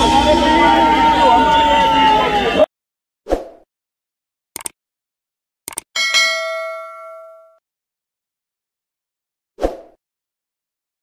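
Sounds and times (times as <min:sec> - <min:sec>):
click: 0:04.6 - 0:04.8, 0:05.7 - 0:05.9
bright bell ding: 0:06.0 - 0:07.6.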